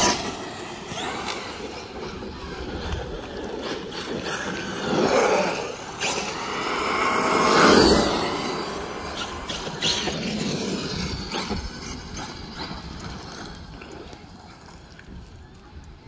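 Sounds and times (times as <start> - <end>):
rc truck motor whine: 0.0 - 15.2
tyre noise on pavement: 0.0 - 16.0.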